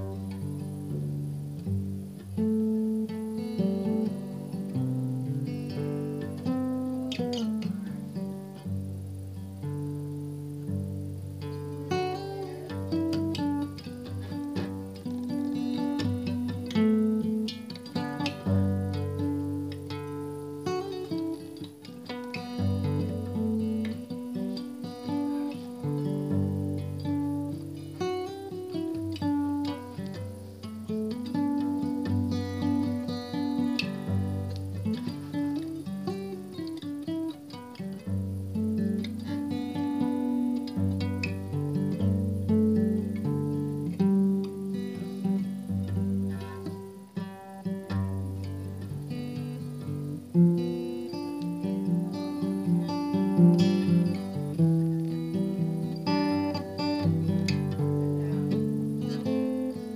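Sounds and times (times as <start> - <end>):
acoustic guitar plucked notes: 0.0 - 59.9.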